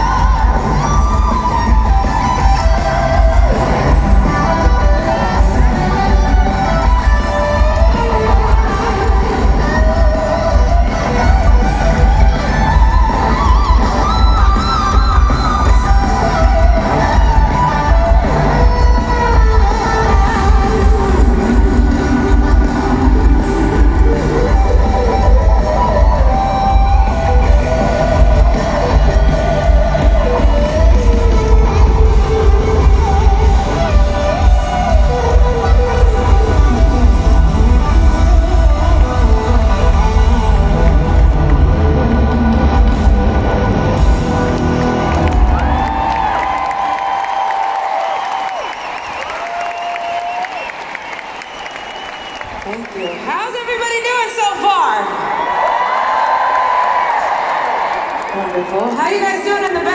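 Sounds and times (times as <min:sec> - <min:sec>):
crowd cheering: 0:00.0 - 0:59.9
live rock band over pa: 0:00.0 - 0:59.9.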